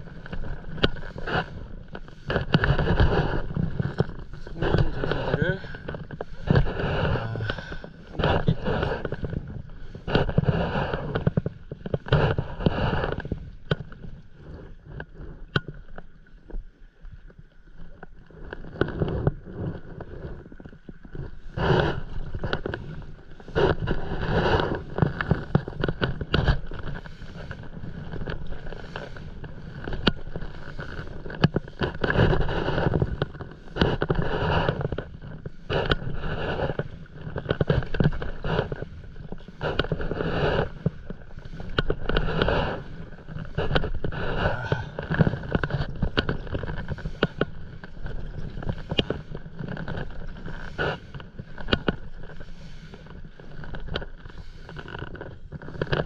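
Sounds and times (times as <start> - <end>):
paddle strokes splashing: 0.0 - 14.9, 18.8 - 55.9.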